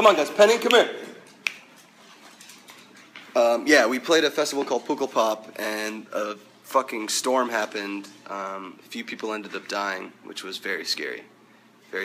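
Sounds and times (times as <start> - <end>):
finger snap: 0.6 - 1.8.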